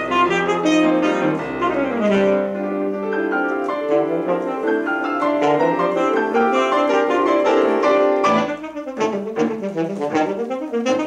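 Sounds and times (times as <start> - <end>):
alto saxophone: 0.0 - 11.0
grand piano: 0.0 - 11.0.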